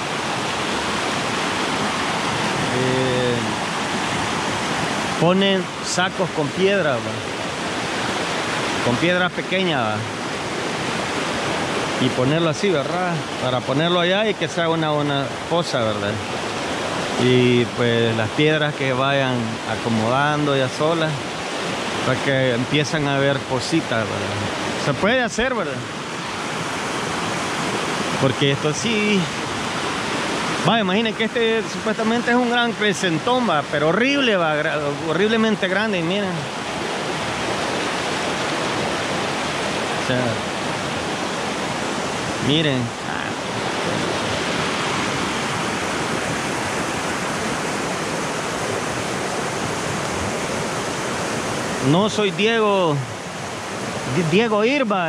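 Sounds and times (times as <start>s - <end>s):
river rushing over rocks: 0.0s - 55.0s.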